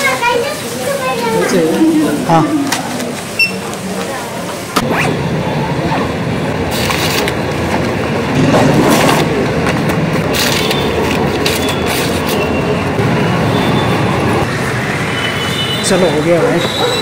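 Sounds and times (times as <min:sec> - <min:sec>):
street traffic rumble: 0:00.0 - 0:17.0
paper bags rustling: 0:10.2 - 0:12.4.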